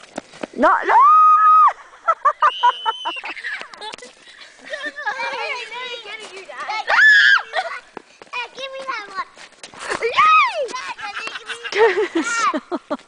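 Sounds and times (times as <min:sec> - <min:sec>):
children screaming: 0:00.8 - 0:01.8, 0:06.8 - 0:07.7
children shouting: 0:06.8 - 0:07.7.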